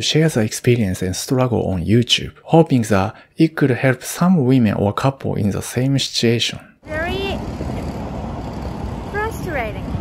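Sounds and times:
person's voice: 0:00.0 - 0:07.4
low traffic rumble: 0:06.8 - 0:10.0.

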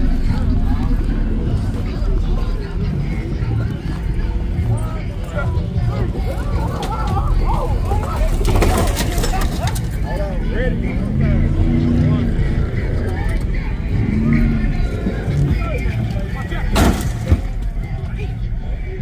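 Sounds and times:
vehicle thumping onto wheels: 0:16.6 - 0:17.8.

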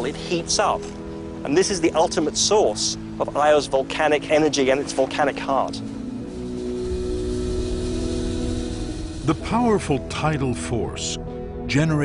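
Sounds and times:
held chord: 0:05.6 - 0:11.4
low rumble: 0:05.8 - 0:11.0.

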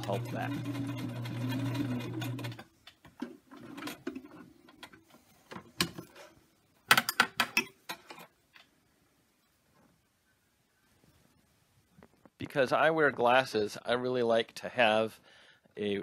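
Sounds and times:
sewing machine stitching: 0:00.0 - 0:02.7, 0:03.5 - 0:04.5.

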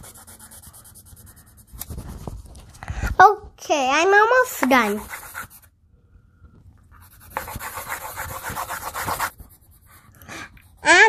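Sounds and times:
pencil scribbling on paper: 0:00.0 - 0:02.0, 0:04.6 - 0:05.7, 0:07.0 - 0:10.1.

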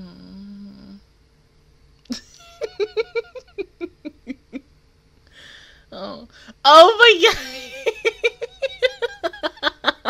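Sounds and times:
woman humming: 0:00.0 - 0:01.1.

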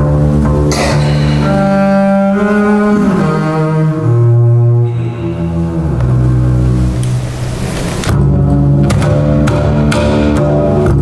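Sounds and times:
bowed double bass: 0:00.0 - 0:11.0.

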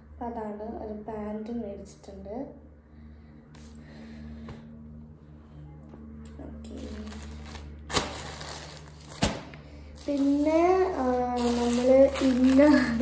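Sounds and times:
low hum: 0:00.0 - 0:13.0
fabric rustling: 0:06.8 - 0:13.0.

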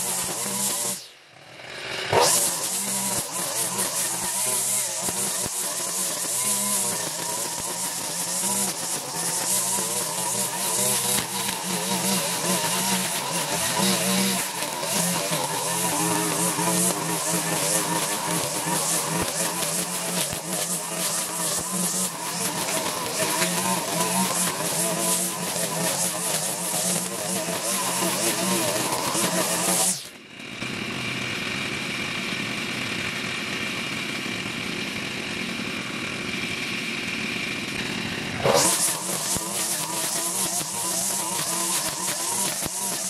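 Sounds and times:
string trimmer cutting grass: 0:00.0 - 0:43.0.

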